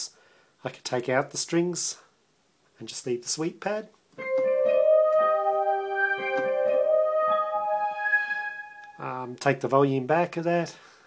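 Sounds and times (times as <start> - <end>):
synth sweep pad: 4.2 - 9.1
digital piano chords: 4.2 - 9.2.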